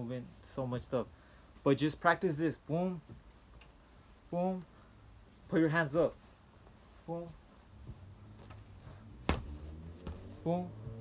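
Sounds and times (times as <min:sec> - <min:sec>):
punch on punching bag: 0:09.2 - 0:09.6.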